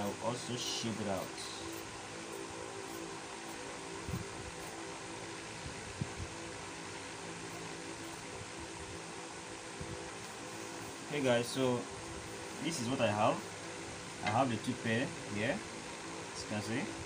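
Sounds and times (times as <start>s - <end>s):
mechanical fan hum: 0.0s - 17.0s.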